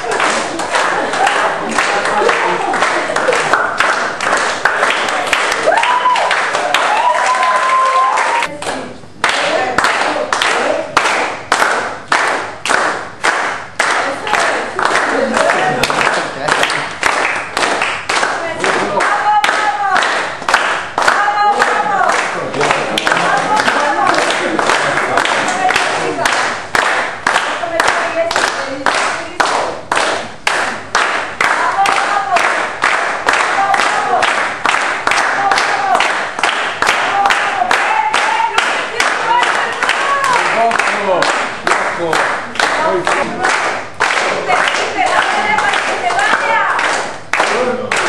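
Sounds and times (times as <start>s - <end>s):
group hand-clapping: 0.0s - 48.0s.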